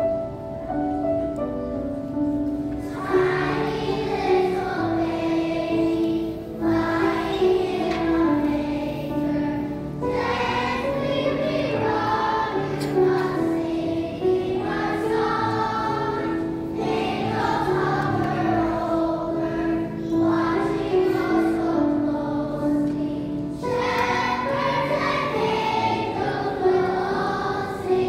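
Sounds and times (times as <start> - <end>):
grand piano: 0.0 - 28.0
children's choir singing: 2.6 - 28.0.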